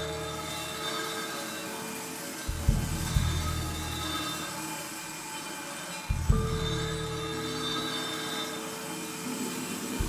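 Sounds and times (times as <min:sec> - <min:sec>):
faint ringing tones: 0:00.0 - 0:10.0.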